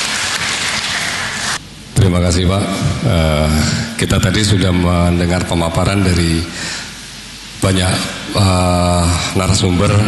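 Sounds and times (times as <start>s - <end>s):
audience applauding: 0.0s - 1.6s.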